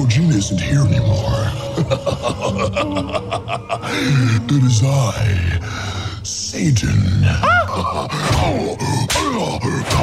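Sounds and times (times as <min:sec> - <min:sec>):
wordless vocal sounds: 0:00.0 - 0:10.0.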